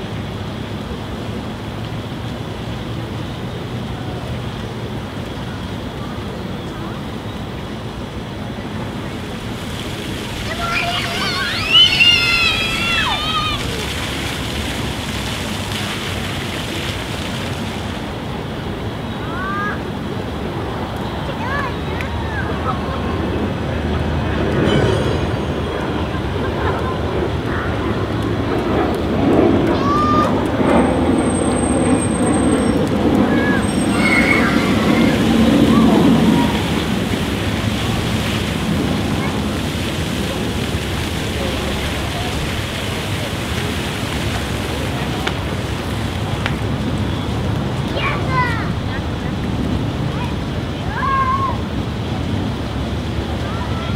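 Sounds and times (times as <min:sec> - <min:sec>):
fountain jets splashing on paving: 0:00.0 - 0:53.9
children shouting: 0:10.3 - 0:14.4, 0:19.2 - 0:19.9, 0:29.6 - 0:30.8, 0:32.2 - 0:37.2, 0:38.9 - 0:39.9, 0:50.1 - 0:51.6.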